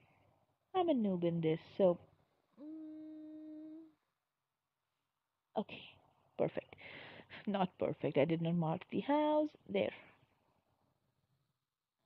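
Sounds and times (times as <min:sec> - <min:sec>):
person humming: 0:02.6 - 0:04.0.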